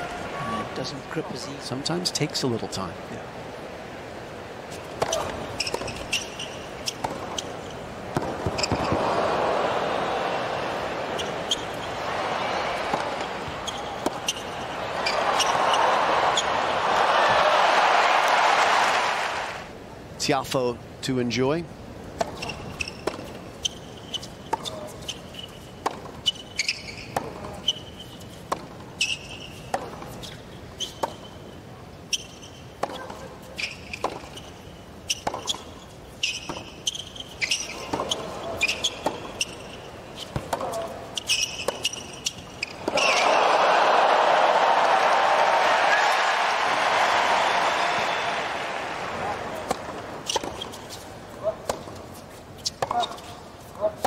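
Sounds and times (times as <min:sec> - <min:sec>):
tennis ball bouncing: 0:04.8 - 0:09.2, 0:10.8 - 0:18.4, 0:22.2 - 0:31.4, 0:32.2 - 0:43.3, 0:45.2 - 0:54.0
racket hitting tennis ball: 0:04.9 - 0:07.5, 0:08.1 - 0:09.3, 0:10.8 - 0:19.1, 0:22.2 - 0:23.4, 0:25.8 - 0:27.7, 0:28.4 - 0:31.3, 0:32.8 - 0:33.3, 0:33.9 - 0:34.4, 0:35.1 - 0:35.7, 0:37.6 - 0:43.4, 0:45.0 - 0:54.0
sneakers squeaking on court: 0:05.0 - 0:09.0, 0:11.0 - 0:12.0, 0:12.7 - 0:16.6, 0:22.2 - 0:31.4, 0:32.0 - 0:43.3, 0:49.5 - 0:53.9
crowd cheering and applauding: 0:08.9 - 0:11.1, 0:11.9 - 0:13.2, 0:14.6 - 0:19.7, 0:42.9 - 0:49.7.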